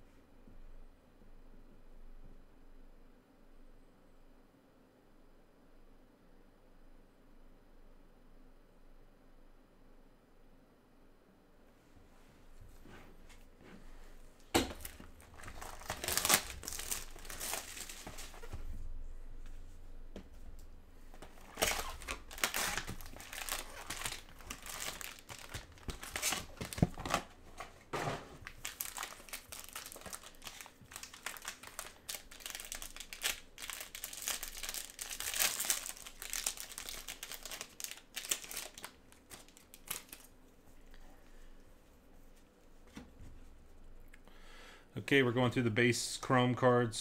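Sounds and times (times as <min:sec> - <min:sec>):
plastic wrapper crinkling and tearing: 0:14.6 - 0:18.6, 0:21.2 - 0:27.7, 0:28.4 - 0:40.3.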